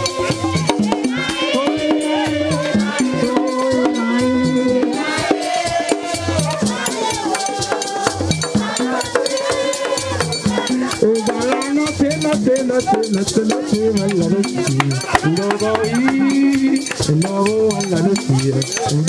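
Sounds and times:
group singing: 0.0s - 18.0s
wooden hand drums beating: 0.0s - 19.0s.

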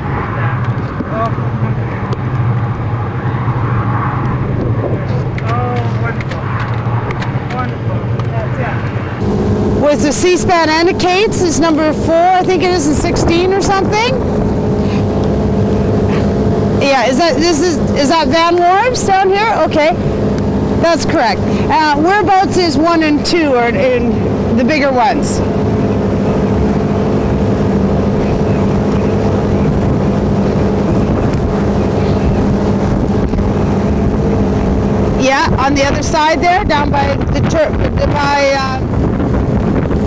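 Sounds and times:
motorboat engine running: 0.0s - 40.0s
water noise: 0.0s - 40.0s
wind: 0.0s - 40.0s.

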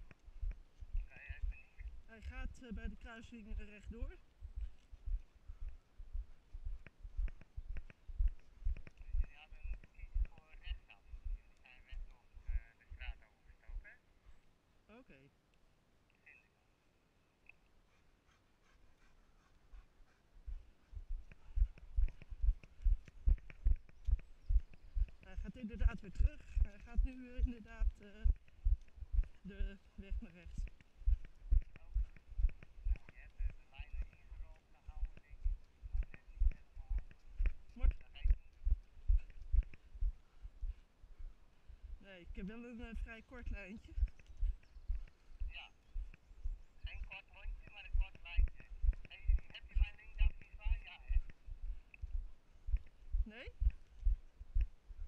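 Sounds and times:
faint light ticks: 0.0s - 1.1s, 6.7s - 10.5s, 21.2s - 25.4s, 30.0s - 39.9s, 43.9s - 46.3s, 51.2s - 53.0s, 53.6s - 54.8s
footsteps dull thuds: 4.4s - 10.3s, 20.4s - 29.5s.

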